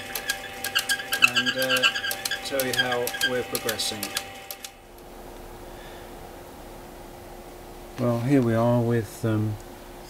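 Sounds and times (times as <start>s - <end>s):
coil winding rig clicking: 0.0s - 4.8s
steady low hum: 0.0s - 10.0s.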